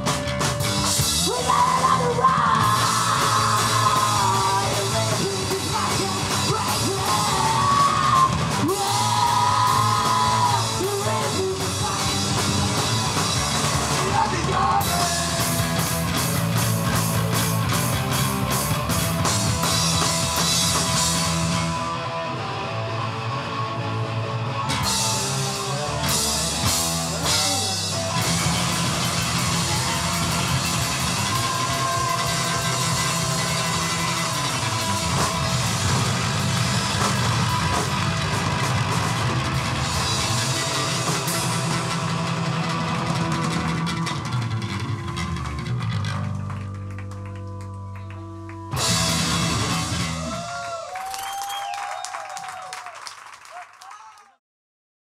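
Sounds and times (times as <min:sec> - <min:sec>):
punk rock band playing live: 0:00.0 - 0:50.5.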